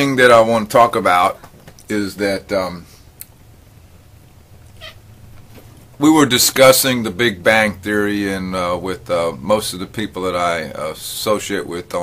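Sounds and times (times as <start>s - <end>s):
low steady hum: 0.0s - 12.0s
faint animal call: 4.7s - 5.1s.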